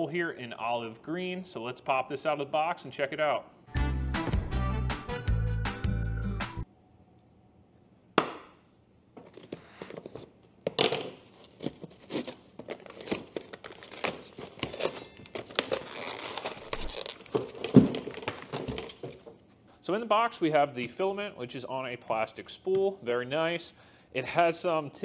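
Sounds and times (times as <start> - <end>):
cardboard rustling and tearing: 11.2 - 19.3.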